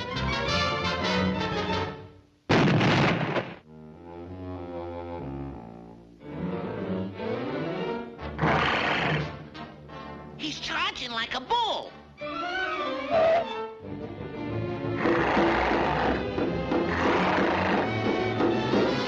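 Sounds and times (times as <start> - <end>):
orchestral cartoon music: 0.0 - 2.2, 3.8 - 19.0
dynamite explosion: 2.5 - 3.6.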